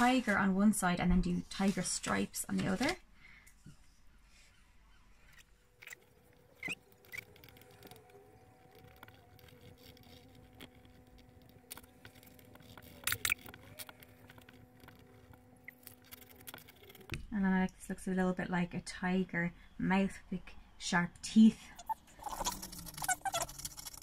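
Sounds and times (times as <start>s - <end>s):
faint steady hum: 0.0s - 24.0s
soft clicks and scratches: 5.2s - 17.3s.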